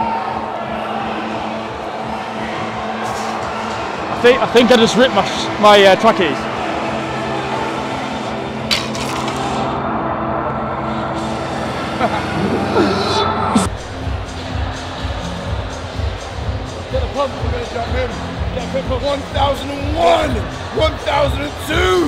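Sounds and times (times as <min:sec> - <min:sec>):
sustained electronic music: 0:00.0 - 0:22.0
electronic music with pulsing beat: 0:11.1 - 0:22.0.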